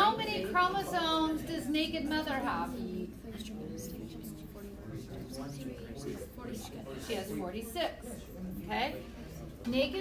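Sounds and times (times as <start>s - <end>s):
murmur of students' voices: 0.0s - 10.0s
teacher speaking: 0.0s - 10.0s.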